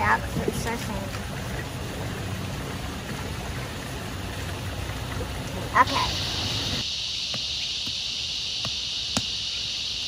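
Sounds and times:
water running along a trough: 0:00.0 - 0:09.4.

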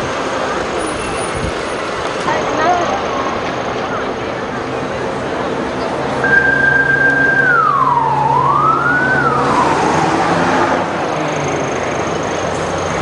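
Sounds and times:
bus engine passing: 0:00.0 - 0:13.0
siren-like sliding tone: 0:06.2 - 0:10.9.

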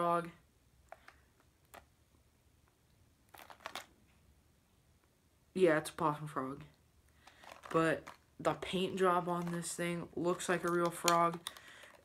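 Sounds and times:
plastic package rustling: 0:03.3 - 0:04.0, 0:07.2 - 0:12.0
plastic package clicking: 0:03.4 - 0:03.9, 0:07.2 - 0:08.2, 0:10.5 - 0:12.0.

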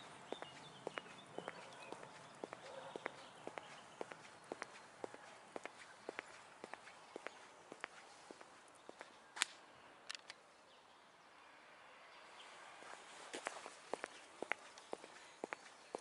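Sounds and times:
footsteps on pavement: 0:00.0 - 0:09.6, 0:12.7 - 0:16.0.

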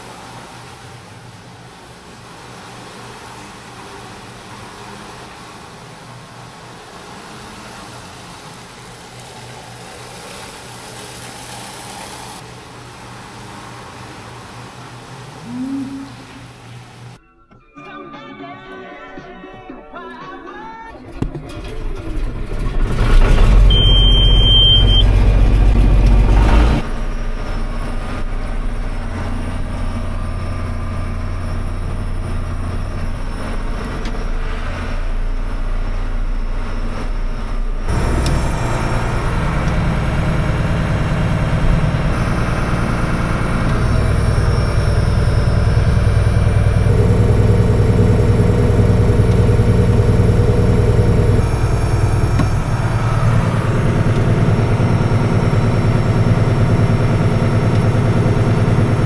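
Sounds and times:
tractor diesel engine running: 0:21.0 - 0:59.0
short high beep: 0:23.7 - 0:25.2.

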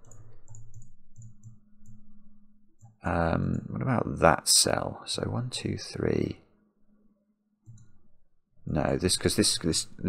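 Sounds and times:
computer mouse and keyboard clicks: 0:00.0 - 0:02.0, 0:07.6 - 0:08.0.

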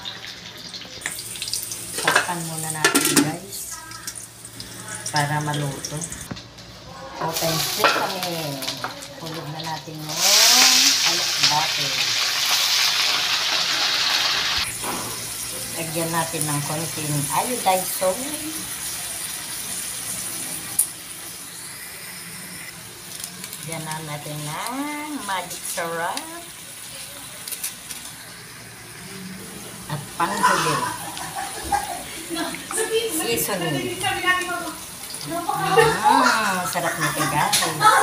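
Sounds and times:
greens sizzling in a wok: 0:00.0 - 0:38.0.

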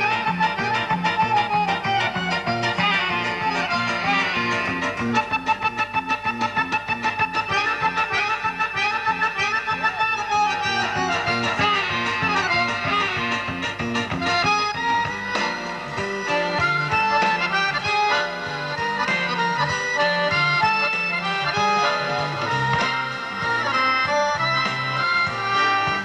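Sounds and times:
piano accordion playing fast: 0:00.0 - 0:26.0.

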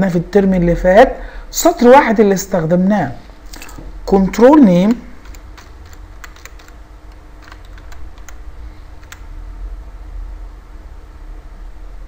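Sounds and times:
computer keyboard key clicks: 0:04.8 - 0:08.4, 0:09.0 - 0:09.3.

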